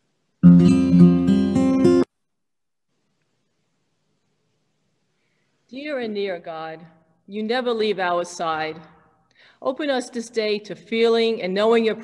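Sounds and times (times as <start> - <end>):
acoustic guitar music: 0.4 - 2.1.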